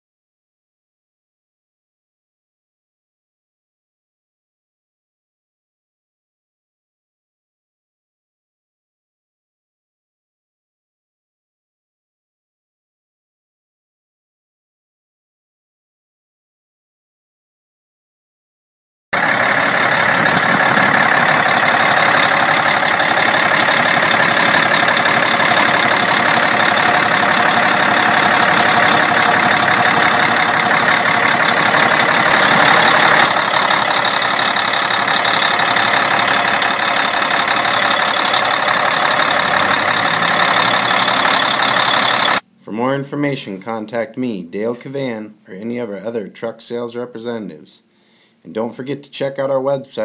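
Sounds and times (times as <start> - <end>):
diesel engine idling: 19.2 - 42.4.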